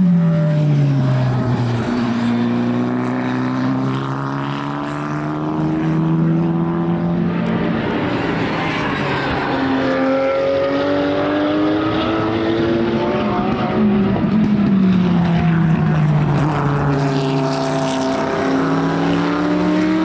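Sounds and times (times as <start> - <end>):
racing car engine revving: 0.2 - 20.0.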